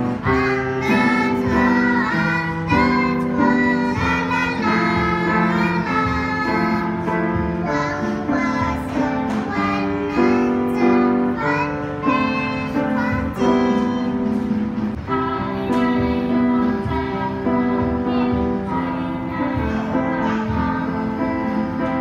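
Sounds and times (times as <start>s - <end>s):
girls singing in unison: 0.0s - 14.2s, 15.1s - 22.0s
piano chords: 0.0s - 22.0s.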